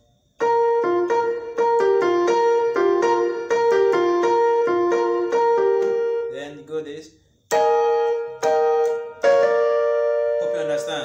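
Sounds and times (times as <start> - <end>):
electronic keyboard piano run: 0.4 - 6.9, 7.5 - 11.0.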